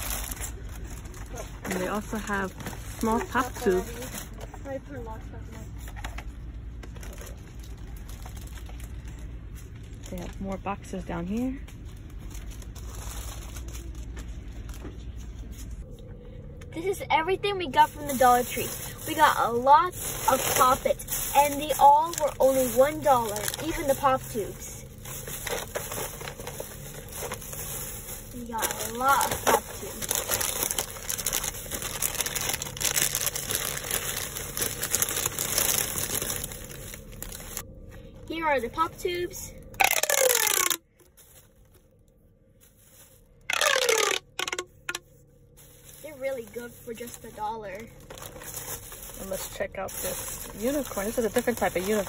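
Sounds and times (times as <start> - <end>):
plastic packaging crinkling: 0.0 - 4.4, 6.6 - 10.4, 19.9 - 37.6, 39.8 - 41.6, 42.8 - 45.0, 45.6 - 52.0
low hum: 0.0 - 49.2.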